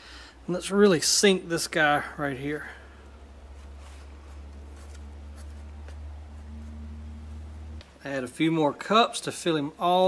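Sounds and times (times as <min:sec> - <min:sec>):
steady low hum: 0:00.0 - 0:08.8
hands digging in potting compost: 0:03.4 - 0:07.2.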